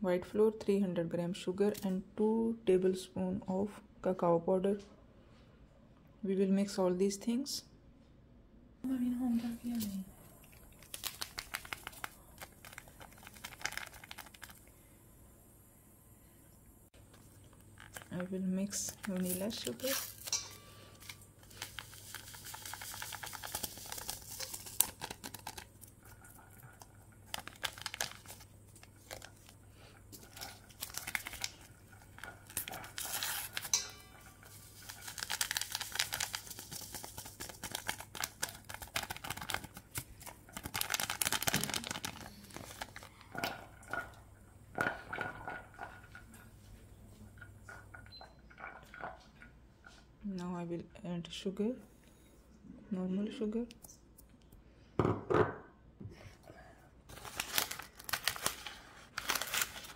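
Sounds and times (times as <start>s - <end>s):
sachets crinkling and rustling: 9.4s - 14.7s, 17.4s - 43.4s, 57.1s - 59.9s
paper sachets tearing: 10.7s - 14.7s, 18.7s - 43.2s, 57.1s - 59.9s.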